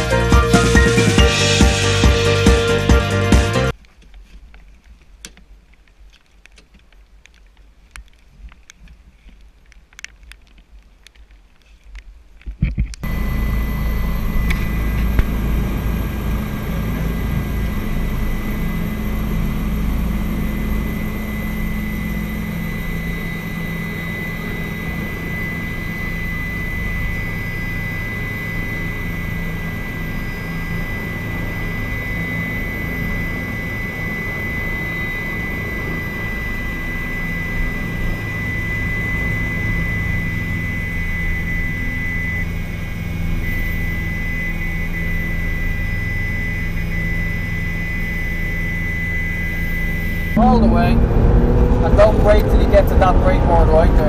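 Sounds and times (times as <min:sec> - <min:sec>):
helicopter engine and rotor drone: 0:00.0 - 0:03.8, 0:13.0 - 0:54.0
high whine: 0:00.0 - 0:03.8, 0:12.6 - 0:54.0.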